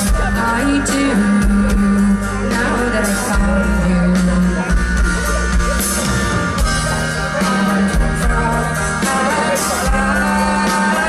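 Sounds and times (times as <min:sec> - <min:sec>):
woman singing lead: 0:00.0 - 0:05.2, 0:06.6 - 0:11.0
live rock band: 0:00.0 - 0:11.0.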